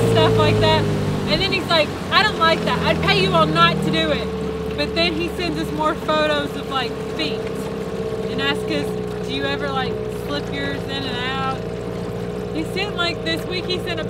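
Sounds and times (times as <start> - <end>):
outboard motor droning: 0.0 - 14.0.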